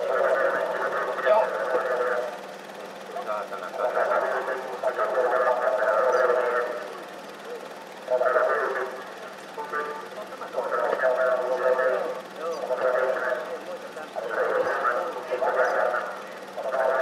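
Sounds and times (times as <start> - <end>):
muffled indistinct speech: 0.0 - 17.0
steady low hum: 0.0 - 17.0.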